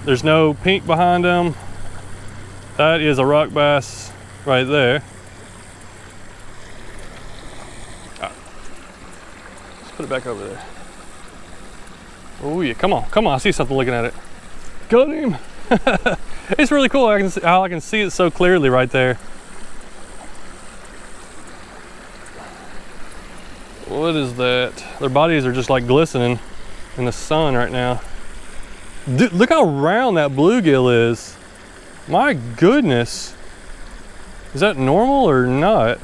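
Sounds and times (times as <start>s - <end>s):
creek rushing over riffle: 0.0s - 36.0s.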